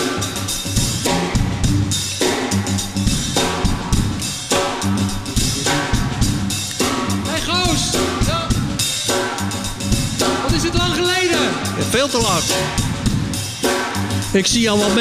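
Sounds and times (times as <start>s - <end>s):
bass line: 0.0s - 15.0s
funk drum kit beat: 0.0s - 15.0s.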